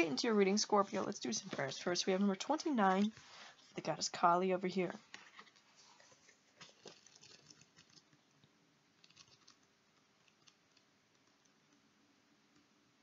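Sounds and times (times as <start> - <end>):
cards and booklet rustling: 0.0 - 3.9, 5.0 - 8.2.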